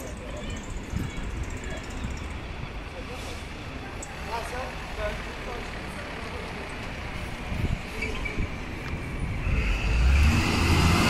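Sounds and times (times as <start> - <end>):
people talking: 0.0 - 7.2
road traffic rumble: 0.0 - 11.0.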